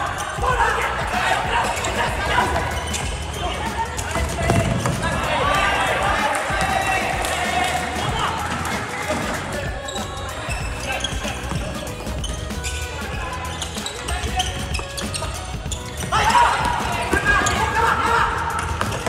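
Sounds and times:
players shouting: 0.0s - 19.0s.

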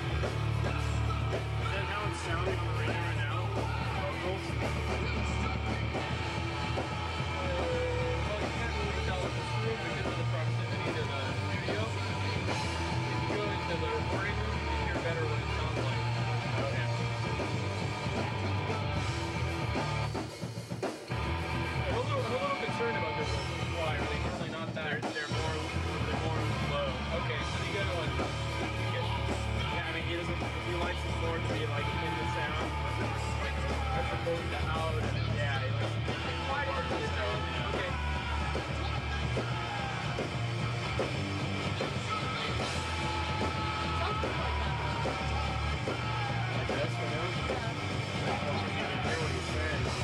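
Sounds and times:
distorted electric guitar: 0.0s - 20.2s, 21.1s - 24.6s, 25.3s - 50.0s
drum kit: 0.0s - 50.0s.

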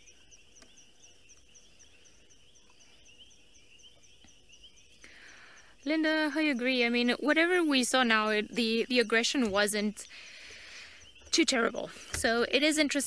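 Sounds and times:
frogs and insects trilling: 0.0s - 13.0s.

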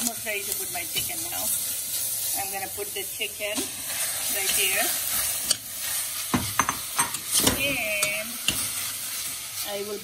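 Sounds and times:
meat and onions sizzling: 0.0s - 10.0s.

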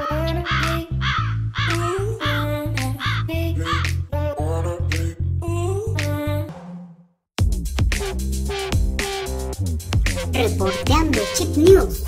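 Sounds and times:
crow cawing: 0.4s - 2.4s, 3.0s - 3.9s
background music with pulsing bass: 7.4s - 12.0s.

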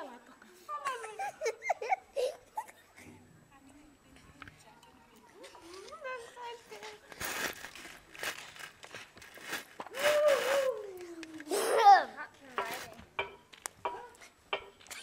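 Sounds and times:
boy making wordless sounds: 10.0s - 12.2s.

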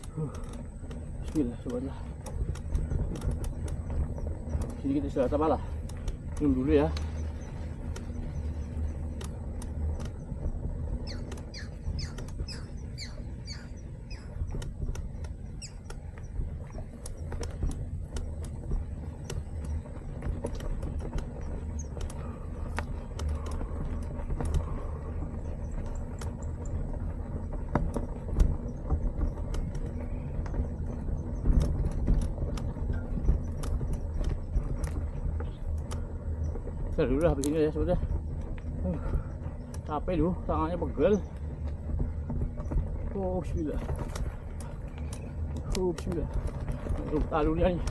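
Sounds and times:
bike clicks and rattles: 0.0s - 47.9s
bike tyres on dirt: 0.0s - 47.9s
birds chirping: 0.1s - 32.2s, 32.8s - 41.8s, 42.4s - 47.9s.

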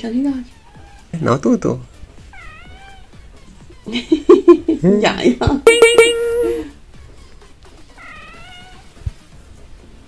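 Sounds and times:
kitten mewing: 5.7s - 6.7s.

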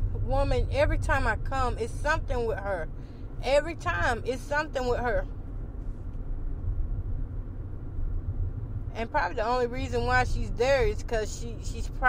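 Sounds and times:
car rumbling inside cabin: 0.0s - 12.0s.

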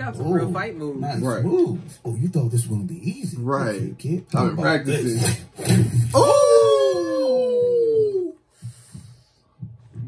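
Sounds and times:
voices crying ooh: 6.2s - 8.4s.

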